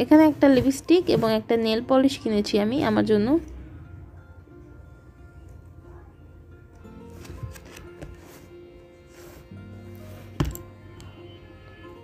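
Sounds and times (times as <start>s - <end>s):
soft background music: 0.0s - 12.0s
handling small items on bedspread: 7.0s - 10.8s
sharp click of item set down: 10.4s - 10.7s.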